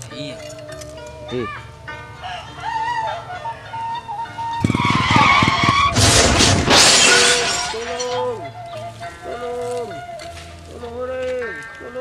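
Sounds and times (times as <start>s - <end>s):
music: 0.0s - 4.7s, 7.2s - 12.0s
motorcycle engine passing: 3.8s - 6.8s.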